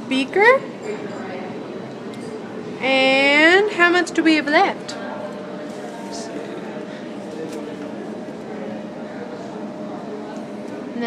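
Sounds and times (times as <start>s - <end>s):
background room noise: 0.0s - 11.0s
faint indistinct voices: 0.0s - 11.0s.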